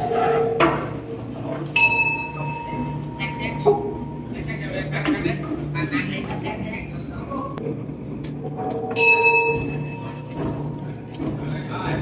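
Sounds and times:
temple bell ringing: 1.8s - 4.4s, 8.8s - 10.4s.

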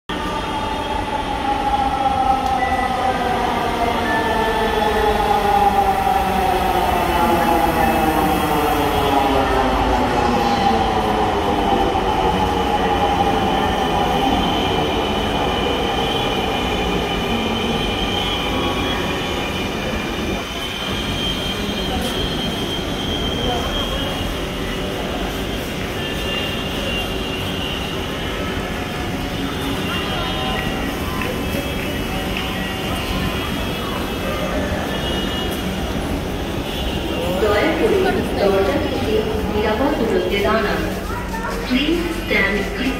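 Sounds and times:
train steady hum: 0.1s - 42.9s.

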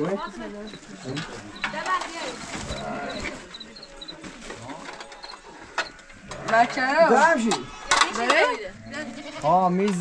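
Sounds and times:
people's voices: 0.0s - 10.0s
livestock bleating: 2.5s - 3.4s.

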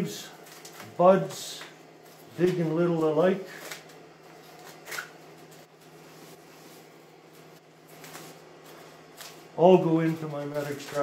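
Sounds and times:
steady low hum: 0.0s - 11.0s
leaves and stems rustling snapping: 10.2s - 11.0s.

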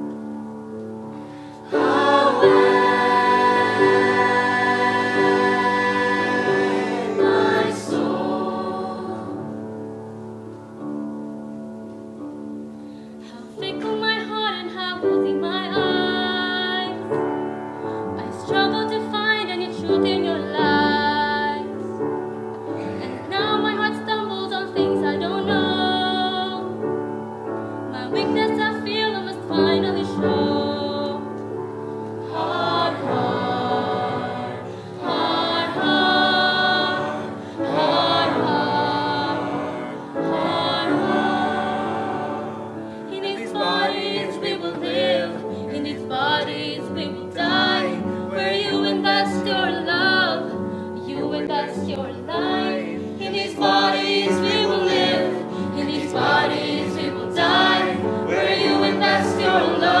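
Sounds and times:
choir singing: 1.2s - 10.2s, 18.2s - 22.0s, 22.8s - 26.8s, 27.9s - 31.3s, 32.1s - 60.0s
woman singing: 13.2s - 17.2s, 18.2s - 21.8s, 23.0s - 26.8s, 27.9s - 31.3s, 43.1s - 57.8s.

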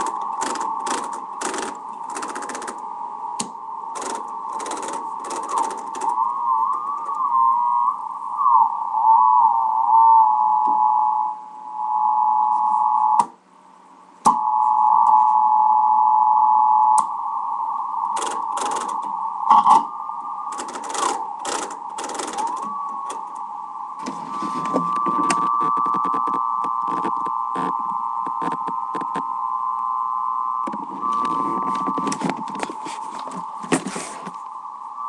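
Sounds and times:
radio receiver whistle: 0.0s - 13.3s, 14.2s - 35.0s
crackle of static: 0.0s - 35.0s.

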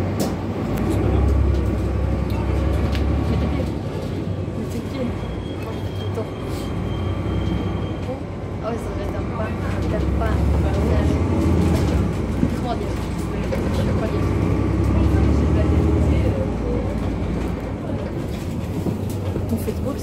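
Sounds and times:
bus engine rumble: 0.0s - 20.0s
faint passengers' voices: 0.1s - 20.0s.

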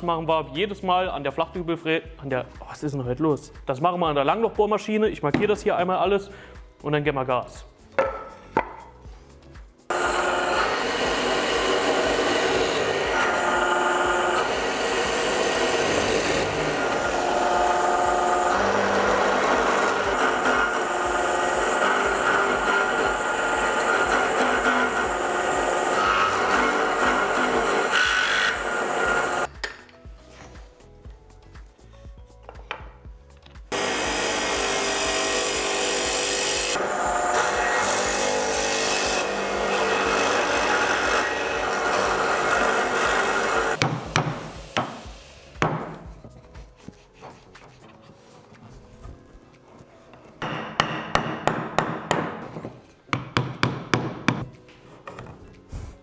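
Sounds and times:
wooden mallet knocks: 7.9s - 8.9s, 43.8s - 45.0s, 50.4s - 55.3s
spiral bit cutting wood: 9.9s - 29.5s, 33.7s - 43.8s.

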